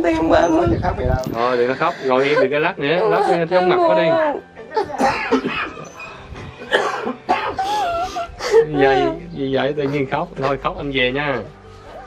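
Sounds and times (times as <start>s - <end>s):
woman sobbing and wailing: 7.0s - 10.5s.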